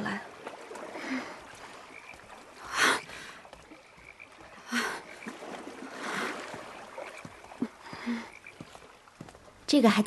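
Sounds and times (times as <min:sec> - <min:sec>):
frogs croaking: 0:00.0 - 0:10.0.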